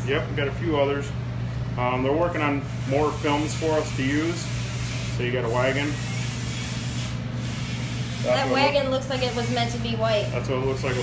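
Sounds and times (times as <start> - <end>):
low constant hum: 0.0 - 11.0.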